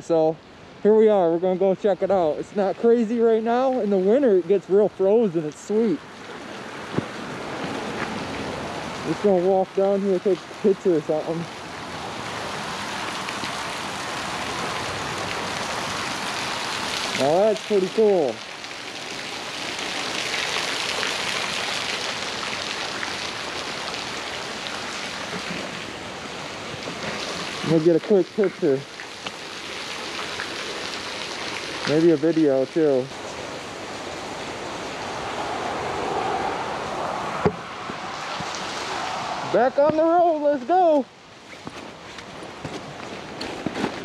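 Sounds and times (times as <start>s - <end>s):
waterfall splashing into pool: 4.9s - 44.0s
quick footsteps on gravel: 41.5s - 44.0s.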